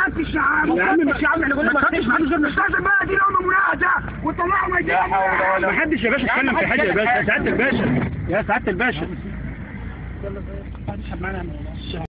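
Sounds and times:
motor vehicle rumbling: 0.0 - 12.0.

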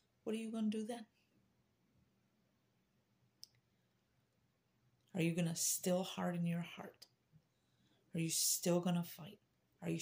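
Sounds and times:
faint click: 3.4 - 3.7.

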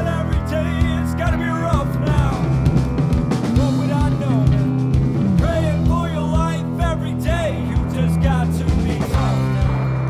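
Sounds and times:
person singing: 0.0 - 2.8, 3.4 - 10.0
rock band playing: 0.0 - 10.0.

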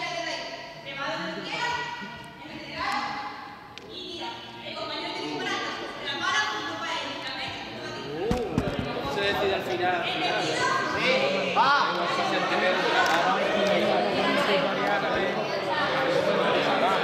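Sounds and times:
voices talking and calling out: 1.1 - 17.0
ball hitting floor: 8.2 - 9.5.

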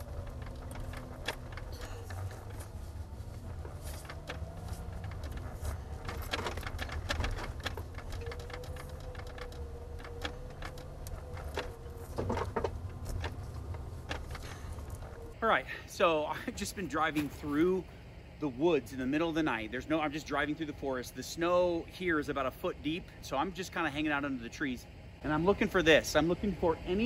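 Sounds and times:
knocks and clicks: 0.0 - 15.3
engine rumbling: 0.0 - 27.0.

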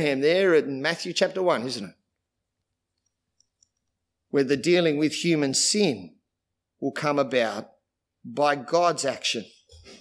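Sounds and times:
very faint small clicks: 2.9 - 4.0.

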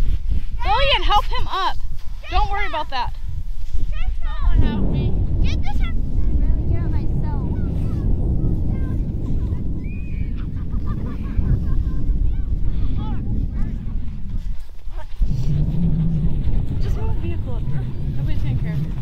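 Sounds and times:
wind buffeting microphone: 0.0 - 19.0
faint children's voices: 3.9 - 15.3.

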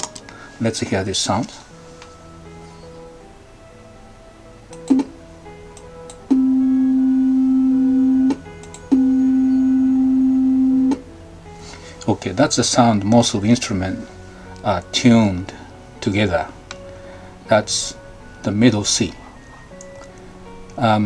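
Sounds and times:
faint background music: 0.0 - 21.0
tone clicks: 8.2 - 9.2.

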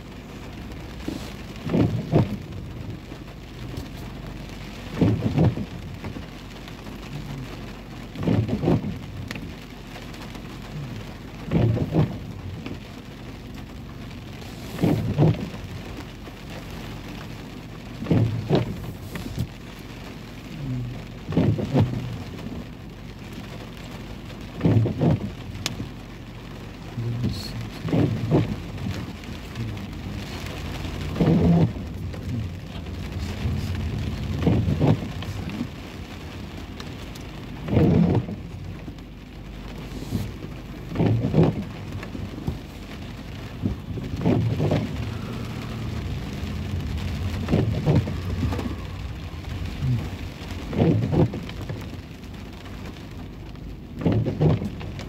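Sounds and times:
rain drumming on car roof: 0.0 - 55.0
windshield wipers swishing: 0.0 - 55.0.

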